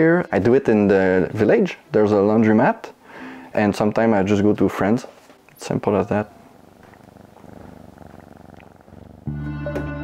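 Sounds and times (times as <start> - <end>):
cat purring: 5.6 - 9.8.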